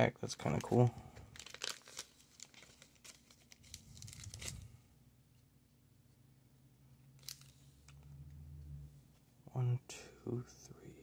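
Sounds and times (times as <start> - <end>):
foil wrapper crinkling: 0.4 - 4.7.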